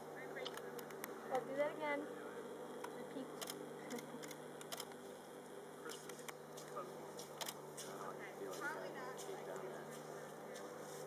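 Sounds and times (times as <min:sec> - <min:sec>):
faint distant voices: 0:00.0 - 0:04.2, 0:05.0 - 0:11.0
steady low hum: 0:00.0 - 0:11.0
camera shutter clicking: 0:03.4 - 0:05.0.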